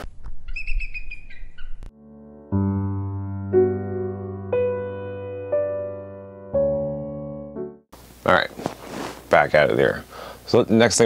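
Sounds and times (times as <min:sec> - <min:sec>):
high whistle-like chirping call: 0:00.5 - 0:01.8.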